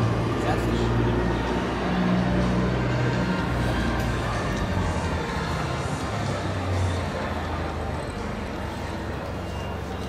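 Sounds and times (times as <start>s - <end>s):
bass-heavy background music: 0.0s - 10.0s
hall hubbub: 0.0s - 10.0s.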